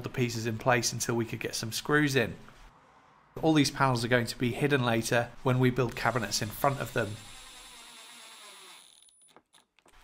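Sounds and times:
impact driver whir: 6.1s - 9.1s.

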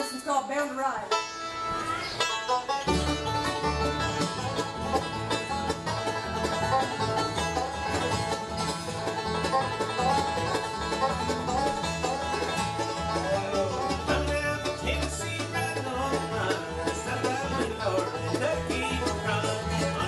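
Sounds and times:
acoustic guitar: 0.0s - 20.0s
banjo picking: 0.0s - 20.0s
bluegrass band playing: 0.0s - 20.0s
upright bass line: 2.8s - 20.0s.

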